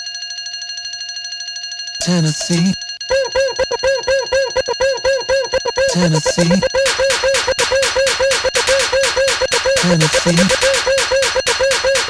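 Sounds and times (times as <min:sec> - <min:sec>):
pulsing high synth tone: 0:02.0 - 0:12.0.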